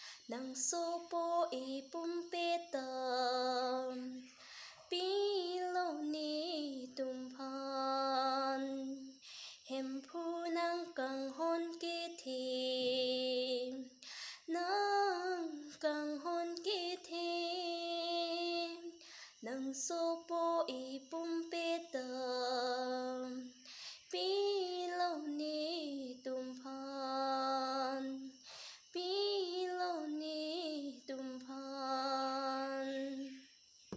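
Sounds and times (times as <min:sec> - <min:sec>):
woman singing unaccompanied: 0:00.0 - 0:33.4.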